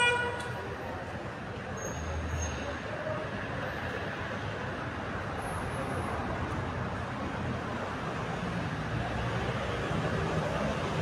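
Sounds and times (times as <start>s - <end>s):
car horn toot: 0.0s - 0.5s
street traffic noise: 0.0s - 11.0s.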